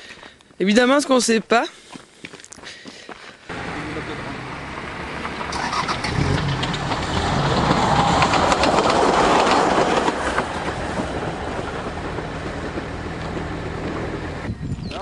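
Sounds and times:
wheels clicking over rail joints: 4.7 - 14.5
train running hum: 6.4 - 14.6.

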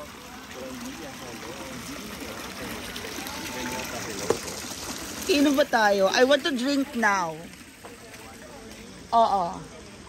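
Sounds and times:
people talking: 0.0 - 4.6, 5.3 - 10.0
fountain water trickling: 0.0 - 10.0.

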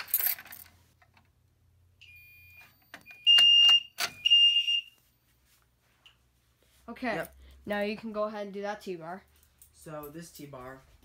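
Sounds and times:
fire alarm horn tones: 2.0 - 5.0.

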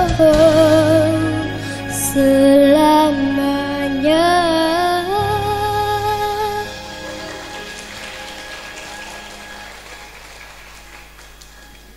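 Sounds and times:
audience applause: 6.6 - 11.9.

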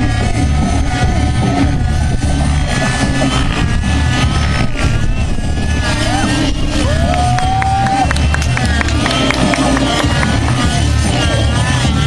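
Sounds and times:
model helicopter engine and rotor: 0.0 - 12.0
music playing: 0.0 - 12.0.

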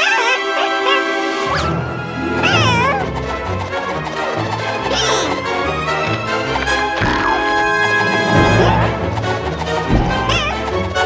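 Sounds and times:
bouncy cartoon music: 0.0 - 11.0
high creature voice crying: 2.4 - 3.1.

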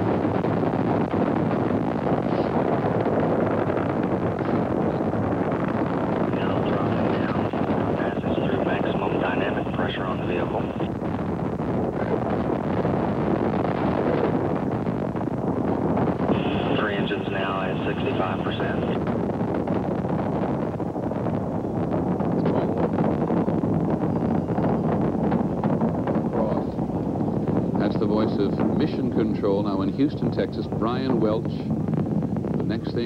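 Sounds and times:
deep rocket rumble: 0.0 - 33.0.

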